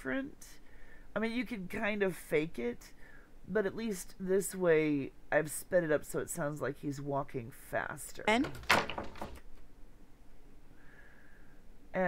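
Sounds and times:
faint hiss: 0:10.1 - 0:12.0.

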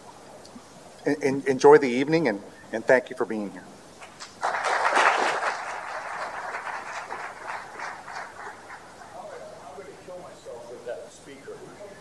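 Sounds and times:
audience applauding: 0:04.0 - 0:09.5.

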